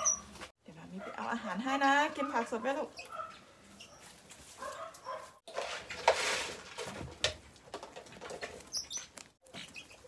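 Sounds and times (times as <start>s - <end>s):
woman speaking: 0.6s - 3.0s.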